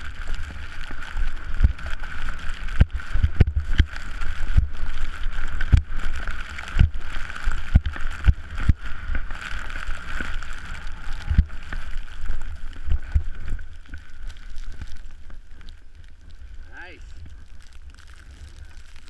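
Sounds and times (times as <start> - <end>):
low thumps from skiing: 0.0 - 14.1
skis hissing through snow: 0.1 - 13.6.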